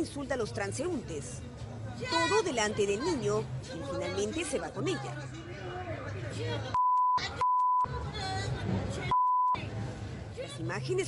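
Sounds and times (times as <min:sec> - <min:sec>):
censor bleep: 0:06.8 - 0:07.9, 0:09.1 - 0:09.6.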